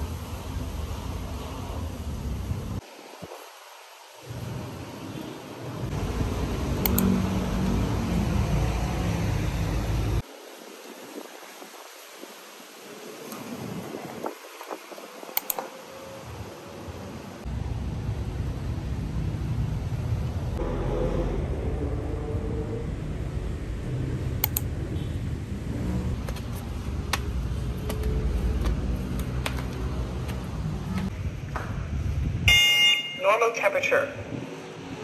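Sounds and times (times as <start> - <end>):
wind rumble on microphone: 5.9 - 15.4, 17.4 - 32.9, 34.2 - 35.0
steady hiss: 10.2 - 17.5.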